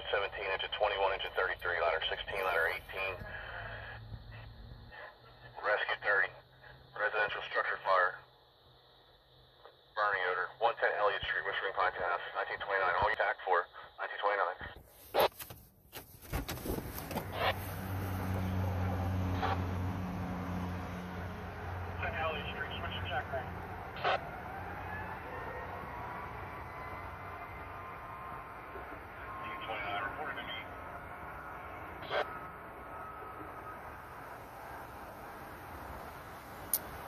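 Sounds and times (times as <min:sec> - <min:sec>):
man talking over radio: 0:00.0 - 0:04.0, 0:04.9 - 0:08.3, 0:09.6 - 0:15.4, 0:21.9 - 0:24.2, 0:29.3 - 0:30.9, 0:32.0 - 0:32.3
distant siren wailing: 0:17.2 - 0:36.7.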